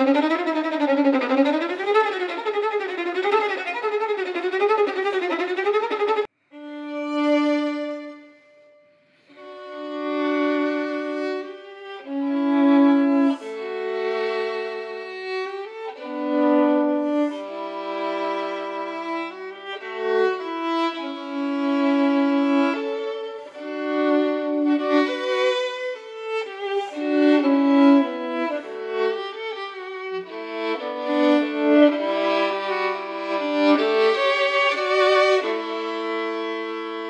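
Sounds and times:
solo violin slow melody: 0:00.0 - 0:37.0.

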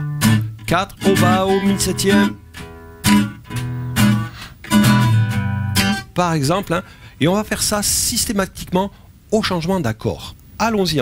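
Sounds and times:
nylon-string guitar strumming: 0:00.0 - 0:06.6.

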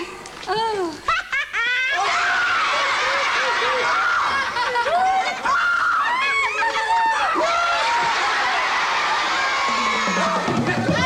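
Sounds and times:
studio audience laughing: 0:02.8 - 0:05.5.

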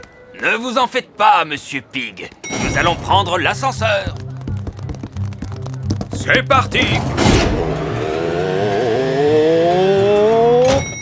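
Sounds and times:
high chime: 0:02.4 - 0:03.4
lift doors swishing shut: 0:06.8 - 0:10.9
rising whine: 0:07.4 - 0:10.7.

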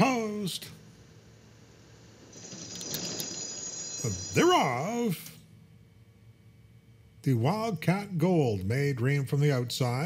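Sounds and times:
starting bell ringing: 0:02.3 - 0:05.0.

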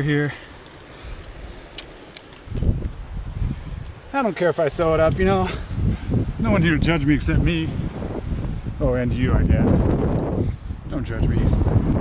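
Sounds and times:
climbing gear clinking: 0:00.0 - 0:02.9
wind buffeting microphone: 0:00.0 - 0:12.0.

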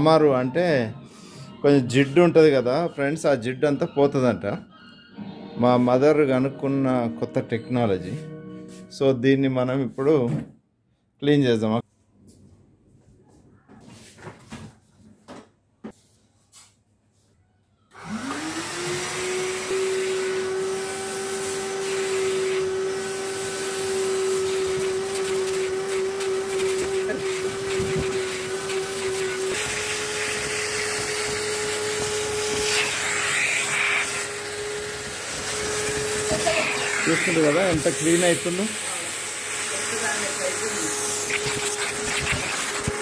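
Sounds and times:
vacuum cleaner motor whine: 0:17.9 - 0:43.0
vacuum nozzle on upholstery: 0:18.0 - 0:43.0.

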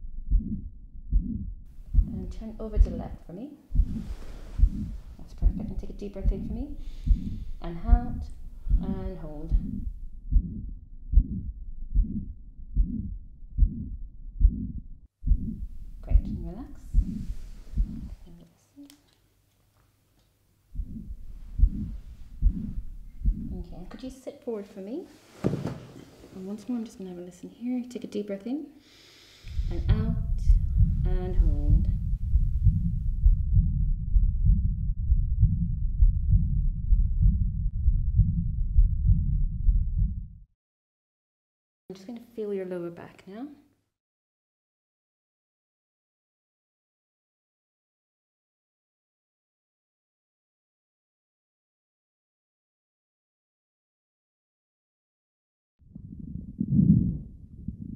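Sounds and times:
heartbeat through stethoscope: 0:00.1 - 0:18.2, 0:20.7 - 0:23.9, 0:29.5 - 0:40.5, 0:55.9 - 0:57.9
heart murmur: 0:00.2 - 0:18.2, 0:20.7 - 0:23.9, 0:29.6 - 0:40.4, 0:55.9 - 0:57.9.

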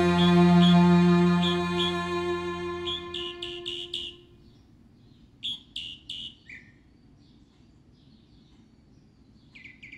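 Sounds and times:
background music: 0:00.0 - 0:04.2
bird chirping: 0:00.0 - 0:06.8.

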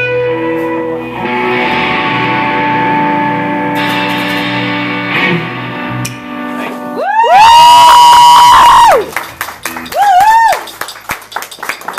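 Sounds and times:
person cheering loudly: 0:07.0 - 0:09.1, 0:09.9 - 0:10.6.

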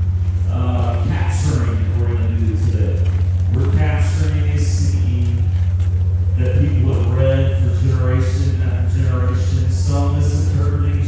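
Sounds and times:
steady low hum: 0:00.0 - 0:11.0
man speaking through pa: 0:00.5 - 0:05.6, 0:06.4 - 0:11.0.

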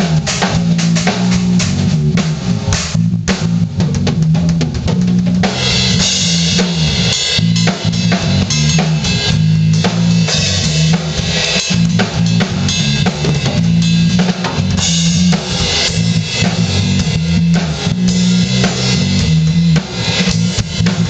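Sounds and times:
funk drum kit with cymbals: 0:00.0 - 0:21.0.

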